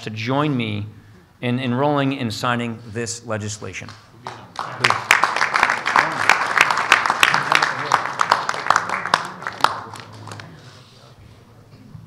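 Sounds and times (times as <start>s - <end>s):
group of people applauding: 4.2s - 10.8s.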